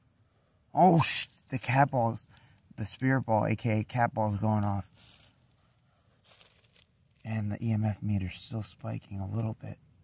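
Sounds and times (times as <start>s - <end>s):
soft faint rustle: 4.2s - 7.5s.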